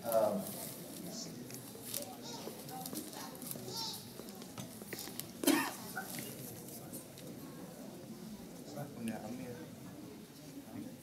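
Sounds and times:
faint murmur: 0:00.0 - 0:11.0
person coughing: 0:05.4 - 0:05.9.

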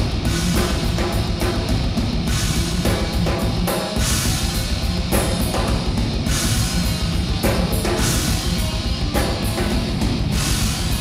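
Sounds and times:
cymbal crashes: 0:00.0 - 0:11.0
drum kit: 0:00.0 - 0:11.0
electric guitars: 0:00.0 - 0:11.0.

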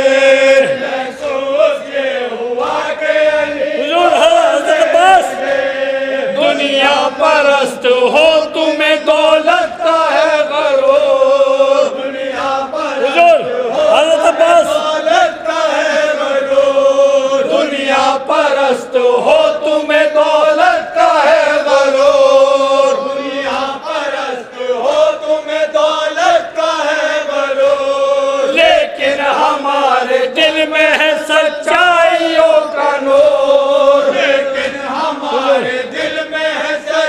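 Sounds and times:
men chanting a lament: 0:00.0 - 0:37.0
lead voice at microphone: 0:13.0 - 0:14.9.

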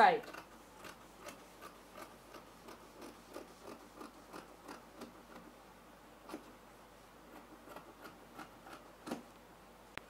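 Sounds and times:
scissors snipping fabric: 0:00.2 - 0:05.4.

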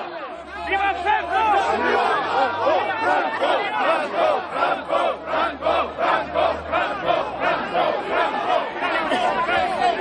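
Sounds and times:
crowd chanting: 0:00.0 - 0:10.0.

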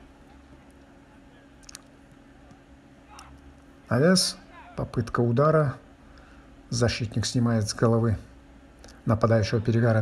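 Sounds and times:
low steady hum: 0:00.0 - 0:10.0
faint clicks: 0:01.6 - 0:03.6.

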